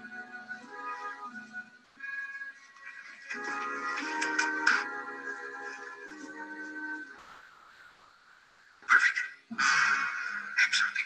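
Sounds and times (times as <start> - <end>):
tv music: 0.0 - 11.0.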